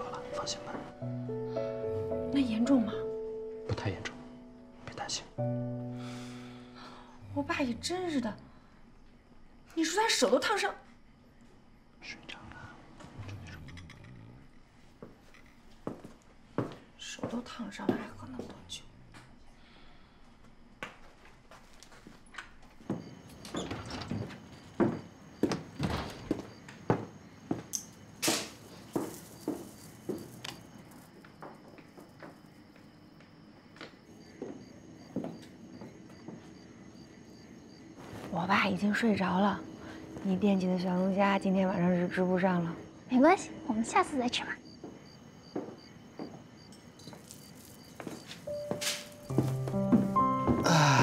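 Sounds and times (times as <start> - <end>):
cricket chirping: 0.0 - 51.0
person shushing: 50.6 - 51.0.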